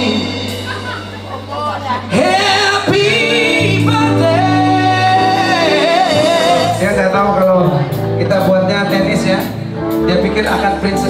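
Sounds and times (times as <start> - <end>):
person singing: 0.0 - 8.0
musical accompaniment: 0.0 - 11.0.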